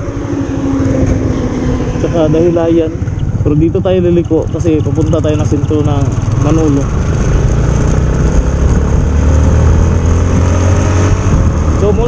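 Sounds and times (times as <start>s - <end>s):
motorcycle engine running: 0.0s - 12.0s
wind rumble on microphone: 0.0s - 12.0s.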